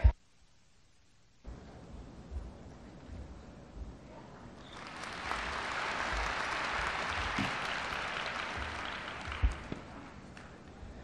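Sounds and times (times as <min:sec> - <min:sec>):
large audience applauding: 0:04.6 - 0:10.6.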